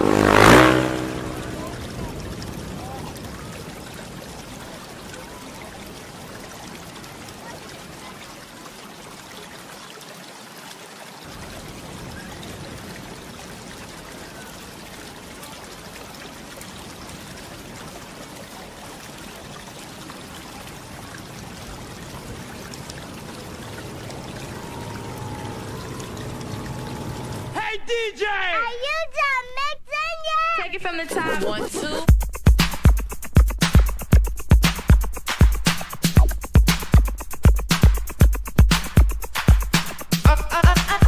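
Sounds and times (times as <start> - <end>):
rushing trickling water: 0.0 - 27.6, 31.2 - 41.0
faint steady tones: 23.2 - 27.6.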